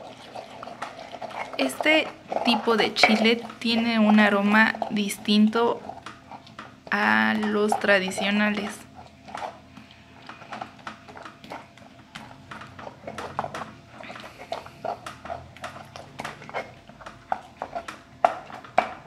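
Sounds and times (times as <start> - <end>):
stone pestle grinding and knocking: 0.8 - 5.4, 10.3 - 13.8.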